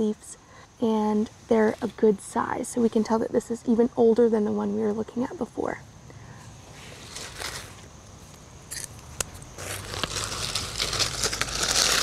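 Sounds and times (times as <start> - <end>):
dry leaves crackling and rustling: 6.7 - 12.0.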